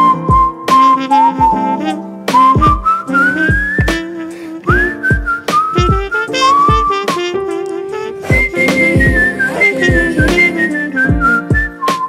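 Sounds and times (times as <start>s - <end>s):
whistled melody: 0.0s - 12.0s
drum beat: 1.4s - 11.8s.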